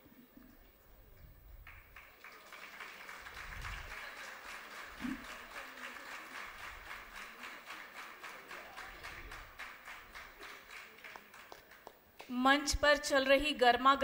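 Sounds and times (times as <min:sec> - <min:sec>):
audience applauding: 0:01.6 - 0:12.0.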